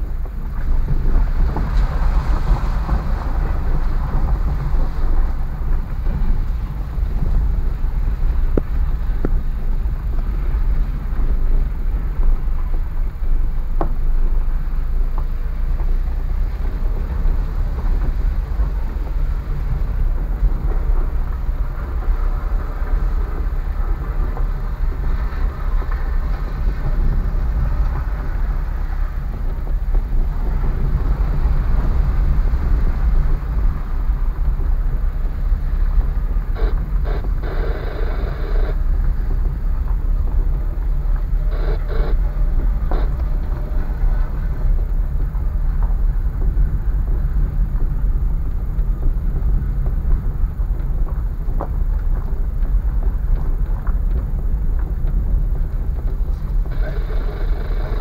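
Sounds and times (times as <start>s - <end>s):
rough tyre noise bursts: 0.0s - 51.6s, 52.4s - 58.0s
car road and engine rumble: 0.0s - 58.0s.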